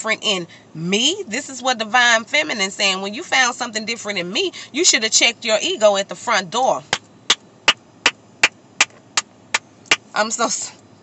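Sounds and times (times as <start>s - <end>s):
hands clapping: 8.8s - 10.0s.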